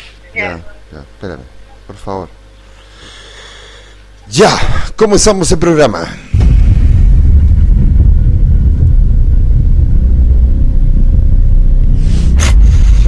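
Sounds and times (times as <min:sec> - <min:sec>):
deep bass rumble: 0:06.3 - 0:13.0.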